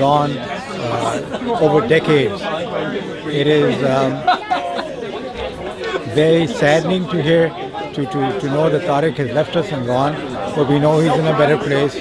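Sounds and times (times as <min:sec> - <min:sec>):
chatter of people talking: 0:00.0 - 0:12.0.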